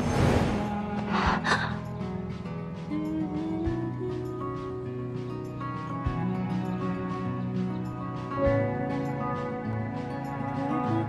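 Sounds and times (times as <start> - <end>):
background music of held notes: 0.4 - 11.0.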